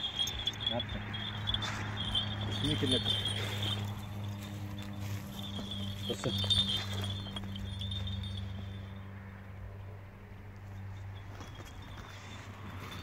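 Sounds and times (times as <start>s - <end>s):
metal chain jingling: 0.0s - 9.2s, 10.8s - 13.0s
steady low hum: 0.0s - 11.9s.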